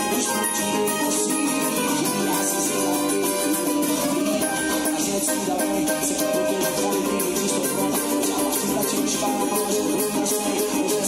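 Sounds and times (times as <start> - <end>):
small guitar strummed: 0.0 - 11.0.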